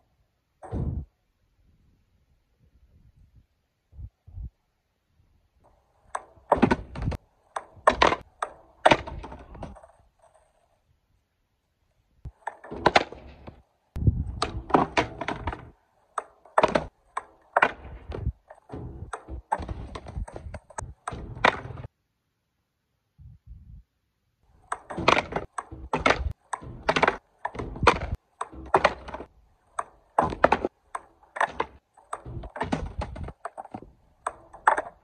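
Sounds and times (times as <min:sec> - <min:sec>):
skateboard pops and landings: 0:00.6 - 0:01.1, 0:05.6 - 0:10.6, 0:12.3 - 0:21.9, 0:24.5 - 0:35.0
skateboard wheels rolling: 0:05.6 - 0:11.0, 0:11.8 - 0:21.9, 0:24.4 - 0:35.0.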